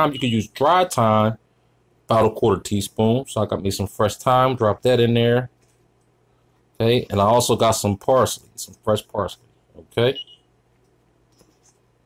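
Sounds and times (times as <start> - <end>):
man speaking: 0.0 - 1.4, 2.1 - 5.6, 6.8 - 10.2
faint low hum: 0.0 - 12.0.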